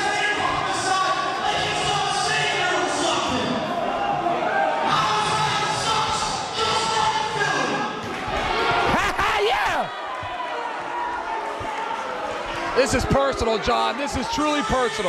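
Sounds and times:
man speaking over loudspeakers: 0.0 - 3.9, 4.7 - 8.0, 12.6 - 15.0.

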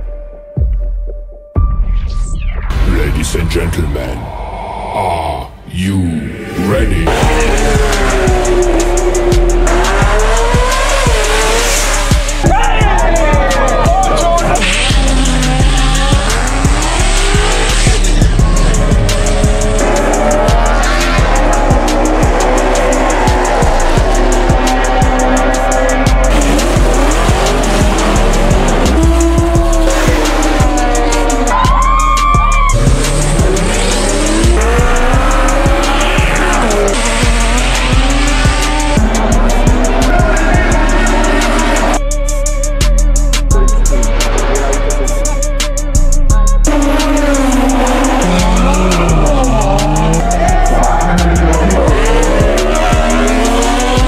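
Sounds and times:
background music with steady beat: 0.0 - 4.2, 6.8 - 54.0
race car engines revving: 6.4 - 54.0.

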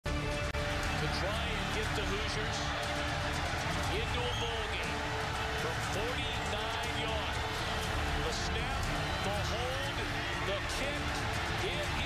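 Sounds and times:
stadium crowd shouting: 0.4 - 12.0.

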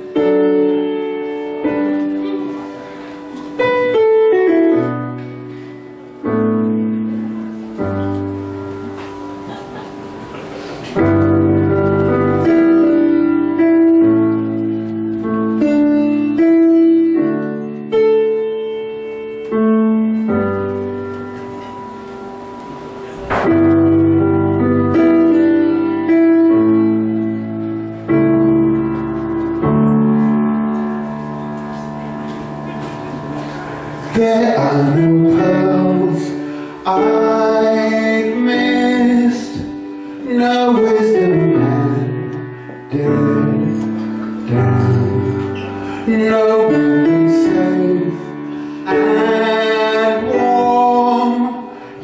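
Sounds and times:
piano chords: 0.0 - 52.0.

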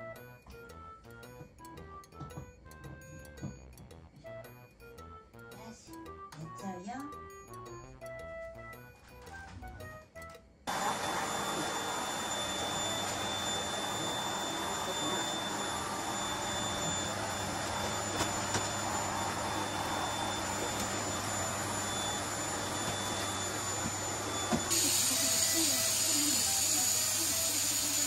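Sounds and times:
vacuum cleaner running: 10.7 - 28.0.

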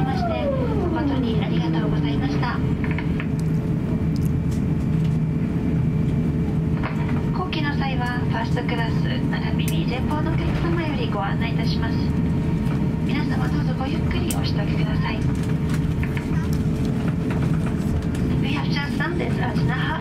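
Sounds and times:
droning tone: 0.0 - 4.2
aircraft cabin engine rumble: 0.0 - 20.0.

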